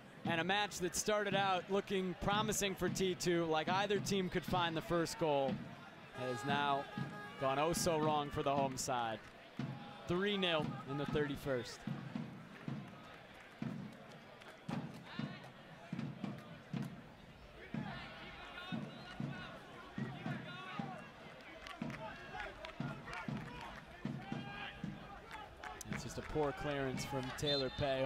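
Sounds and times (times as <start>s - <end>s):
indistinct crowd voices: 0.0s - 28.0s.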